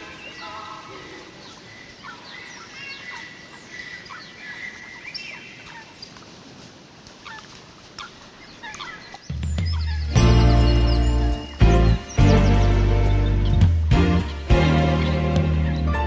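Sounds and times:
birds chirping: 0.0s - 16.0s.

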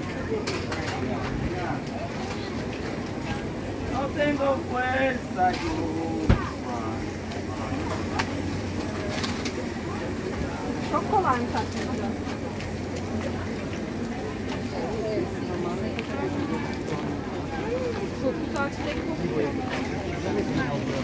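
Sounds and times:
people chattering: 0.0s - 21.0s.

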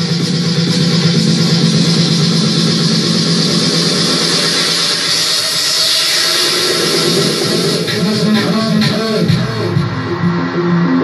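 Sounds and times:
loud dance music mix: 0.0s - 11.0s
hissing sweep: 0.6s - 8.4s.

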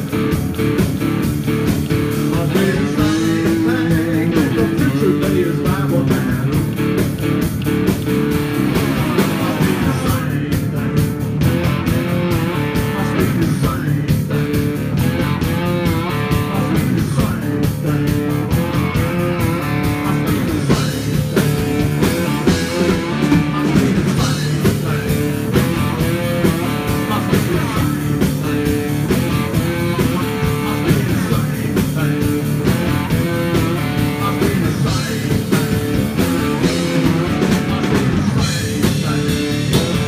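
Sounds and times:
drums keeping a steady beat: 0.0s - 40.0s
electric guitar: 0.0s - 40.0s
amplified blues harmonica wailing: 15.0s - 40.0s.

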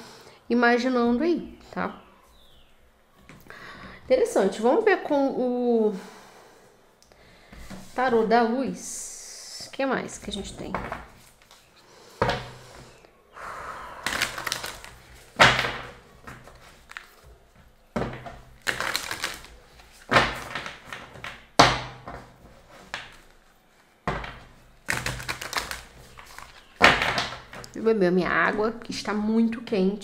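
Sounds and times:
cards being shuffled: 14.1s - 17.3s, 18.2s - 21.3s, 24.9s - 27.7s.

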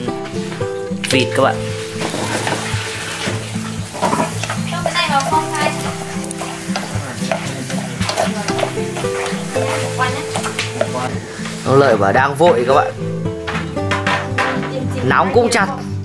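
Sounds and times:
food sizzling in a metal pot: 0.0s - 15.2s
chopsticks ticking against pot: 3.6s - 11.6s.

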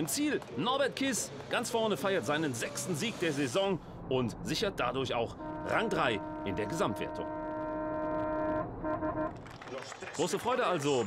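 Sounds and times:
truck engine drone: 0.7s - 9.6s.

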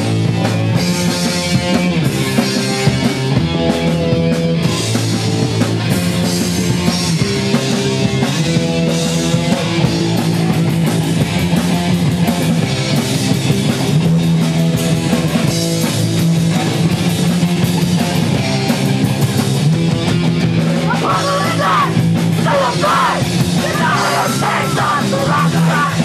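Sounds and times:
bass chords: 0.0s - 26.0s
distorted electric guitar: 0.0s - 26.0s
fast drums: 0.0s - 26.0s
person singing: 20.9s - 26.0s.

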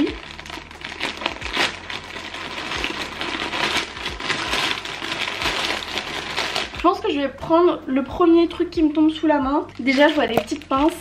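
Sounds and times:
plastic mailer bag crinkling: 0.0s - 7.0s, 8.8s - 11.0s
plastic sachets rustling: 0.0s - 7.0s, 8.8s - 11.0s.

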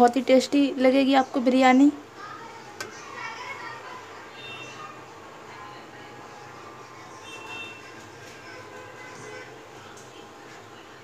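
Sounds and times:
faint children's voices: 1.4s - 11.0s.

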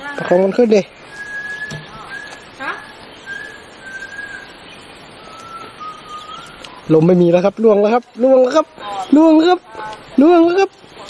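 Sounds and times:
person whistling long notes: 1.1s - 4.5s, 5.2s - 6.9s.

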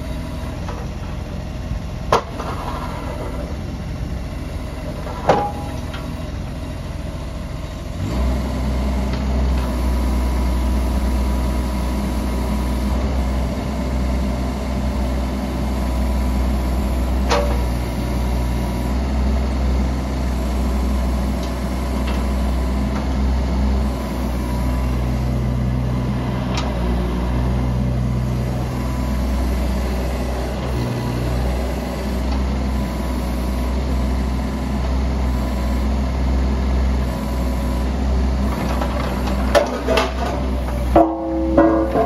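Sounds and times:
diesel engine running: 0.0s - 42.0s
hydraulic hum: 0.0s - 42.0s.

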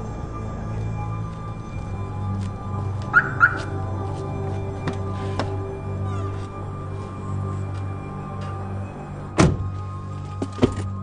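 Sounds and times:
background music with low drone: 0.0s - 11.0s
car alarm chirps: 3.1s - 3.7s.

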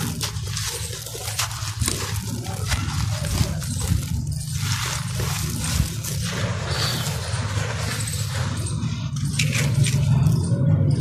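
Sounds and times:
crumbs falling onto grit: 0.0s - 8.6s
dry mix crunching in hands: 0.0s - 11.0s.

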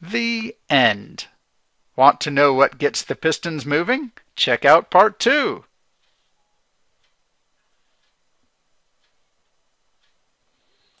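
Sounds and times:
soft ticking: 3.6s - 11.0s.

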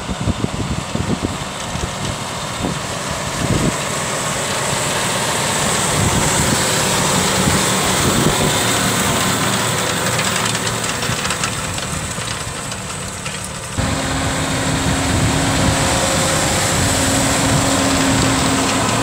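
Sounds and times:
tractor diesel engine under load: 0.0s - 19.0s.

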